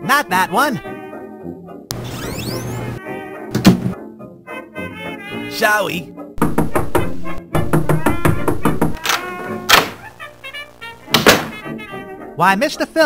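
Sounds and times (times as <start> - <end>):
comedy music: 2.3 - 12.4
knocks and thuds: 3.6 - 4.0, 6.4 - 9.0, 11.1 - 11.6.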